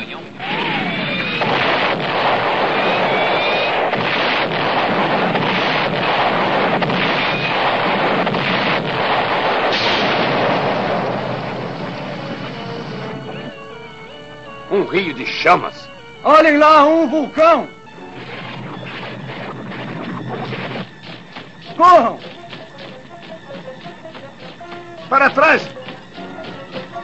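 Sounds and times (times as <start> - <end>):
sharp blasts: 0.0 - 13.5, 18.0 - 27.0
music: 0.0 - 27.0.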